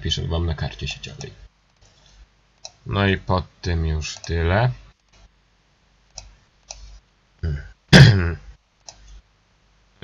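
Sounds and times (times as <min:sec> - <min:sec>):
mouse click: 0:06.1 - 0:07.0
man clearing throat: 0:07.4 - 0:08.5.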